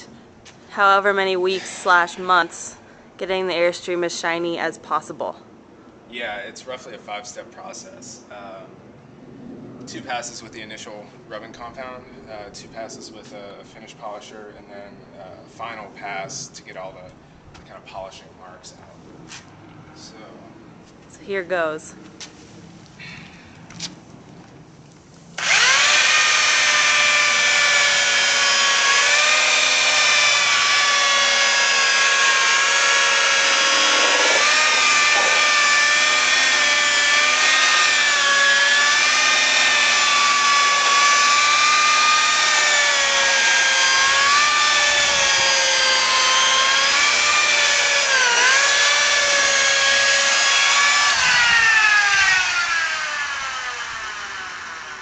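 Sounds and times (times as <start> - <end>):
electric polisher whining: 25.4 - 55.0.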